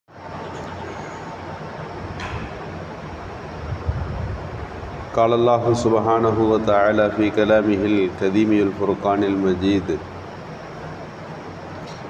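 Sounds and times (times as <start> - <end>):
low rumble and hiss: 0.1 - 12.0
sharp click: 2.2 - 2.6.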